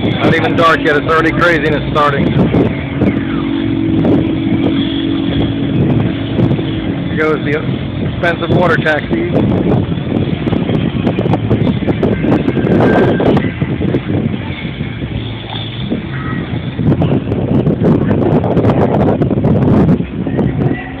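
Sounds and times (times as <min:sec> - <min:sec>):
faint voices: 0:00.0 - 0:09.6
boat motors rumbling: 0:00.0 - 0:21.0
wind on microphone: 0:00.0 - 0:21.0.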